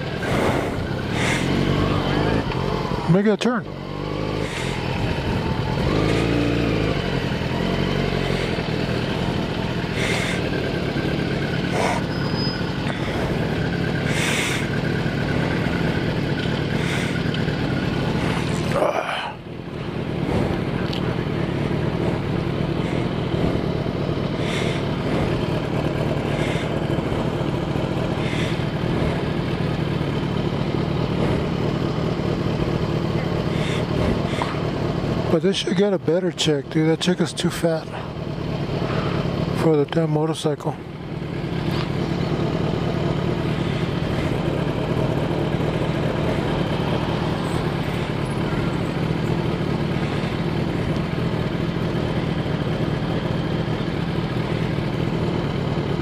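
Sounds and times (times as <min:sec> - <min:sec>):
motorcycle engine running: 0:00.0 - 0:56.0
road and wind noise: 0:00.0 - 0:56.0.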